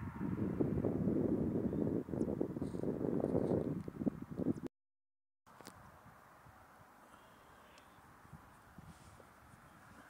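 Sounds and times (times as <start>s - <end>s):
wind buffeting microphone: 0.0s - 4.7s, 7.9s - 10.0s.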